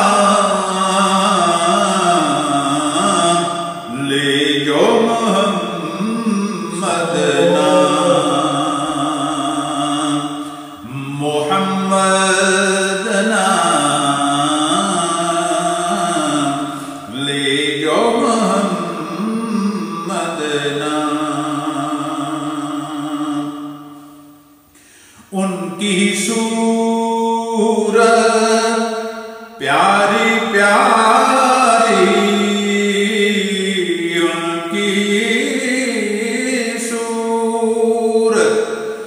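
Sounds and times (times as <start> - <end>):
man singing long wavering notes: 0.0 - 24.2, 29.6 - 39.0.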